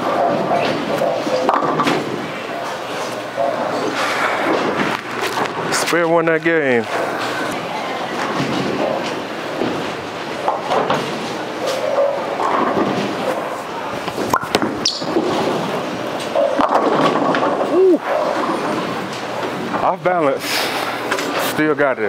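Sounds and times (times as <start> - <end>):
bowling pins crashing: 0.0 - 5.8, 6.8 - 19.8
bowling ball rolling: 0.0 - 6.2, 6.8 - 19.8.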